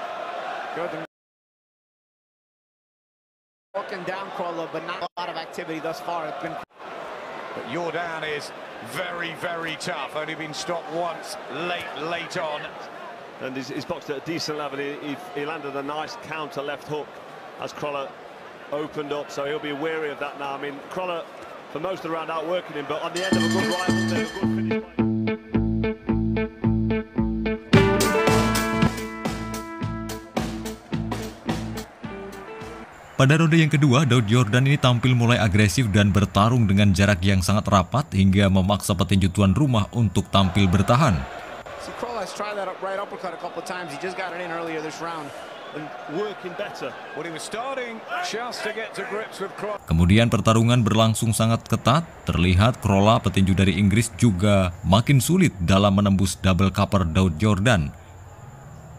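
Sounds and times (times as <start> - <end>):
broadcast speech: 22.7 - 24.8, 33.2 - 45.3, 46.2 - 58.0
man commentating: 23.1 - 24.8, 33.2 - 41.3, 49.8 - 58.0
plucked guitar music: 23.2 - 32.8.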